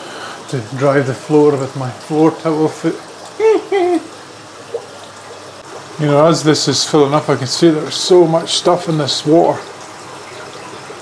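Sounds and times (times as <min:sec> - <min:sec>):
water running from a hose: 0:00.0 - 0:11.0
man making wordless vocal sound: 0:02.7 - 0:04.2.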